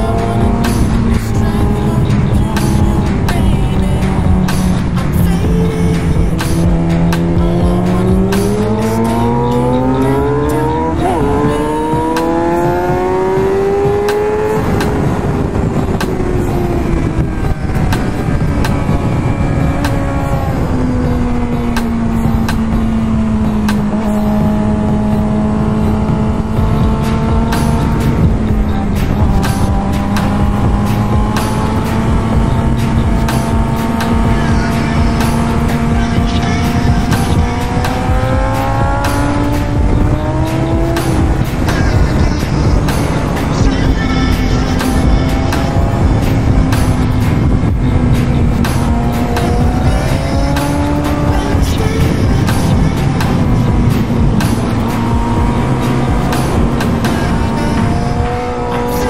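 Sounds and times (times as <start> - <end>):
motorcycle engine revving: 0.0 - 59.0
wind rush: 0.0 - 59.0.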